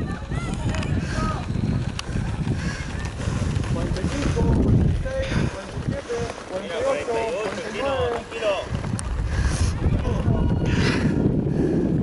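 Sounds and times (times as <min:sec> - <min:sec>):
wind on microphone: 0:00.0 - 0:06.5, 0:07.8 - 0:12.0
distant people calling and talking: 0:00.0 - 0:11.6.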